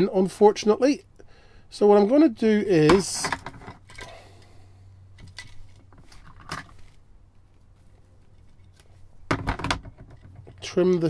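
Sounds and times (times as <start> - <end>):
low steady hum: 0.0 - 11.0
plastic knocks: 9.3 - 10.5.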